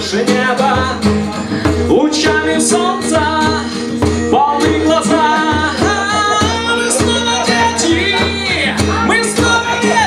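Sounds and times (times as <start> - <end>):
man singing long notes: 0.0 - 10.0
strummed guitar: 0.0 - 10.0.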